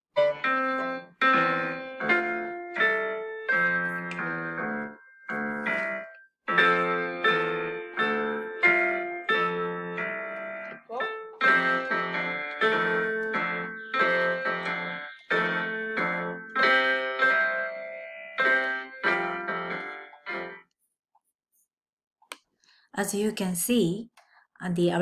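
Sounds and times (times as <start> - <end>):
piano duet: 0.1 - 20.7.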